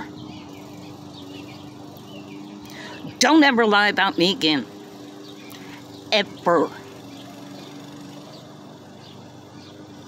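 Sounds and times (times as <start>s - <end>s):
lawn mower running: 0.0s - 10.0s.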